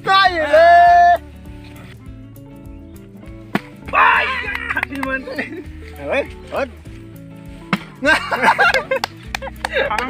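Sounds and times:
quiet background music: 0.0 - 10.0
long drawn-out shout: 3.9 - 4.6.

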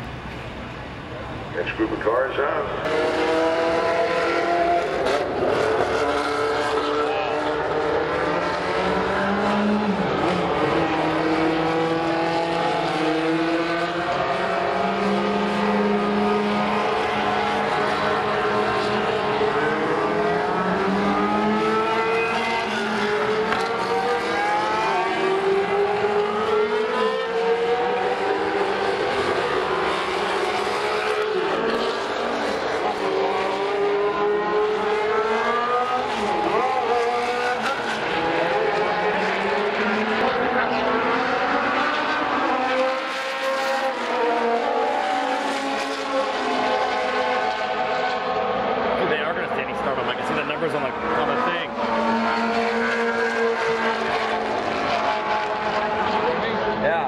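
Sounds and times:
race car engines accelerating: 0.0 - 57.0.

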